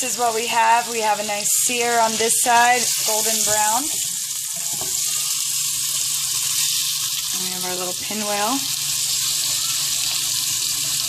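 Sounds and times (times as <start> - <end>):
steak sizzling in a frying pan: 0.0 - 11.0.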